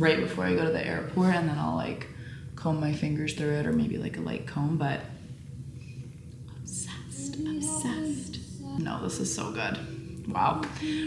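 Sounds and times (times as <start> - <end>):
low room hum: 0.0 - 11.0
woman whispering: 6.6 - 9.0.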